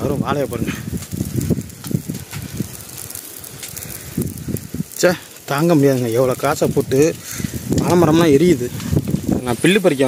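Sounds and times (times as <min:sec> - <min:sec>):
dry plants burning with crackle: 0:00.0 - 0:10.0
wind buffeting microphone: 0:00.0 - 0:10.0.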